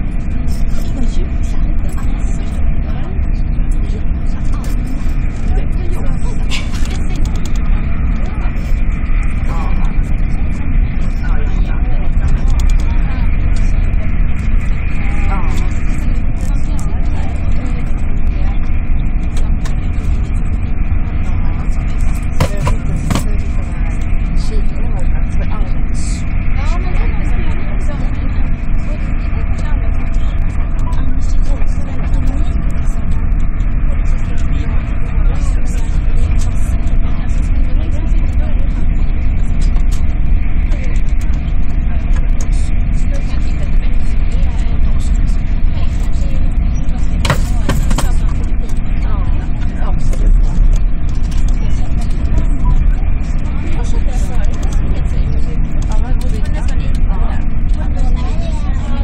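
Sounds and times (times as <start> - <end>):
rush of noise: 0.0 - 59.0
steady hum: 0.0 - 59.0
train running gear rumble: 0.0 - 59.0.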